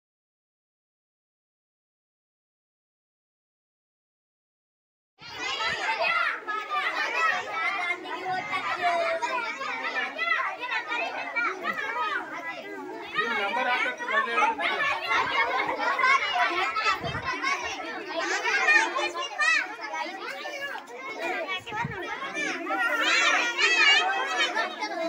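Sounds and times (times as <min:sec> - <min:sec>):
children excited chatter: 0:05.2 - 0:25.0.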